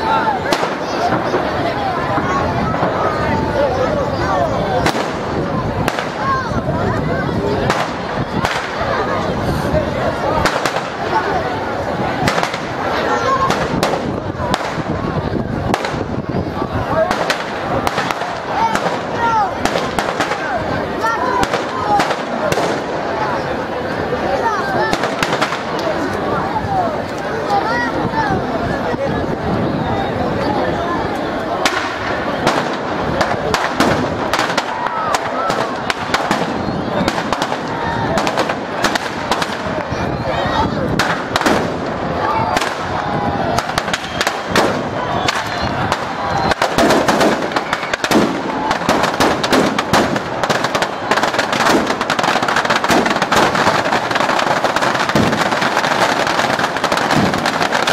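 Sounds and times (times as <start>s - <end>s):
fire crackling: 0.0s - 27.6s, 31.1s - 57.9s
firecrackers cracking: 0.0s - 27.8s, 31.0s - 57.9s
chatter of voices: 0.0s - 57.9s.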